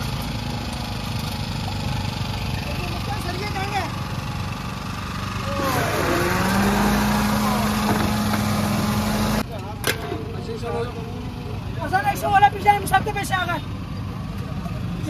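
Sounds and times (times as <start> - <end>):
street noise: 0.0 - 15.0
voices: 0.0 - 15.0
blender motor humming: 5.5 - 9.4.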